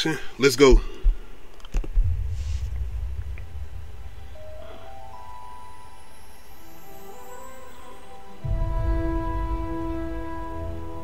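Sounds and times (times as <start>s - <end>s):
low rumbling drone: 1.9s - 6.2s, 8.4s - 11.0s.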